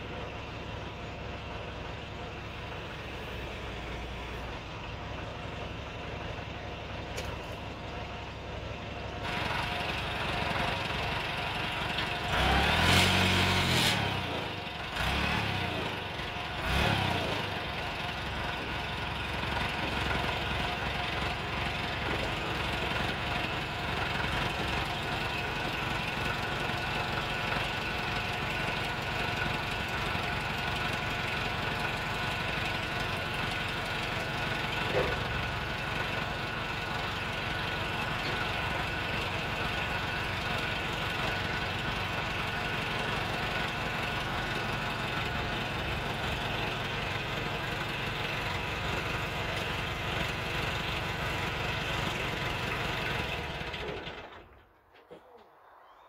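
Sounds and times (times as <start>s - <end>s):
diesel engine revving and idling: 0.0s - 54.6s.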